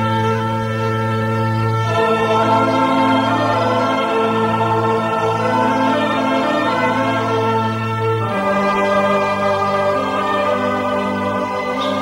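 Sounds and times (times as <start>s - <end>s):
choir holding sustained chords: 0.0s - 12.0s.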